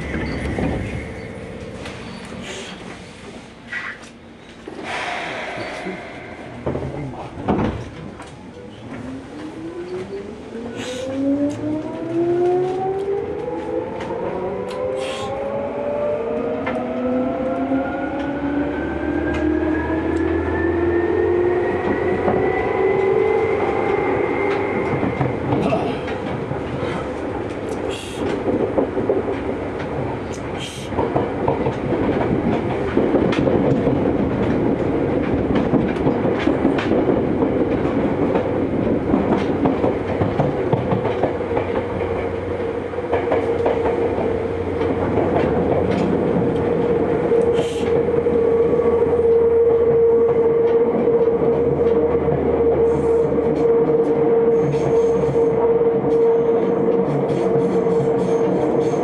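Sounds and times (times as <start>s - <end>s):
rumbling train wheels: 0.0s - 59.0s
rail clicks: 21.7s - 59.0s.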